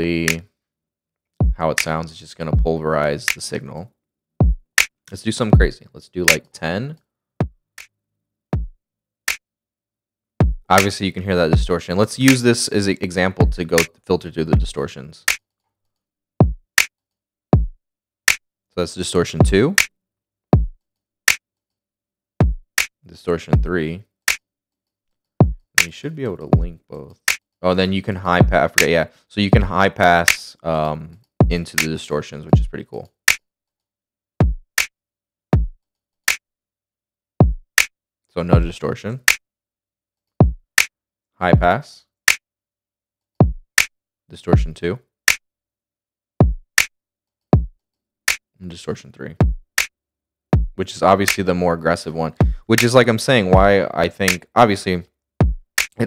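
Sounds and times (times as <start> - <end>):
deep kick drum: 1.4 - 1.6, 4.4 - 4.7, 8.6 - 8.8, 10.4 - 10.7, 13.4 - 13.6, 17.6 - 17.8, 20.6 - 20.8, 22.4 - 22.6, 25.4 - 25.6, 26.6 - 26.8, 28.4 - 28.6, 34.4 - 34.7, 35.6 - 35.8, 37.4 - 37.6, 40.4 - 40.6, 43.4 - 43.7, 46.4 - 46.7, 49.4 - 49.6, 50.6 - 50.8, 52.4 - 52.7, 53.6 - 53.8, 55.4 - 55.7
kick drum with falling pitch: 4.4 - 4.6, 8.6 - 8.8, 10.4 - 10.6, 17.6 - 17.8, 34.4 - 34.6, 35.6 - 35.8, 37.4 - 37.6, 46.4 - 46.7, 49.4 - 49.6, 50.6 - 50.8, 55.4 - 55.6
distorted programmed drums: 13.4 - 13.9, 14.6 - 14.8, 19.4 - 19.7, 26.6 - 26.8, 38.6 - 38.8, 53.6 - 53.8.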